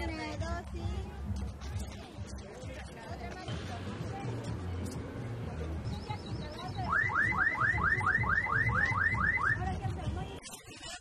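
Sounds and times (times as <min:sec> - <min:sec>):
car alarm siren whooping: 0:06.9 - 0:09.6.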